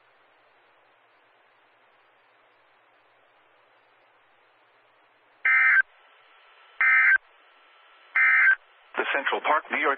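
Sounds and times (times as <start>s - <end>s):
harsh digital data buzzing bursts: 5.4s - 5.8s, 6.8s - 7.2s, 8.1s - 8.6s.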